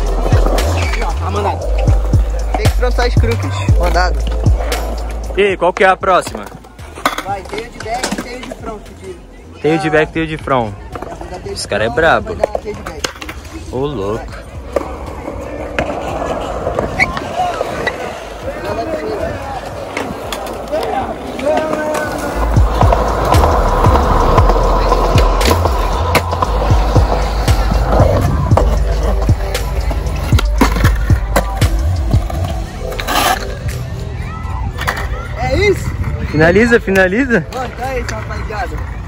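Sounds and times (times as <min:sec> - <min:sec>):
skateboard wheels rolling on pavement: 0:00.0 - 0:39.0
skateboard tail clacks and landings: 0:19.8 - 0:33.4.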